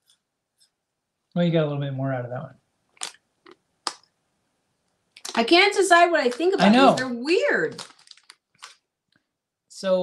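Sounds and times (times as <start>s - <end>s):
puff snack crunching: 3.0s - 4.0s, 7.7s - 8.8s.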